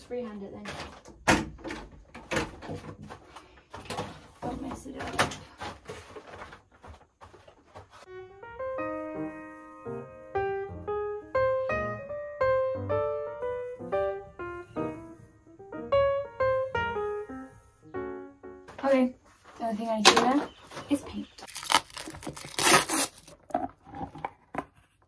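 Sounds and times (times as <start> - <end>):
piano melody: 8.0 - 19.3.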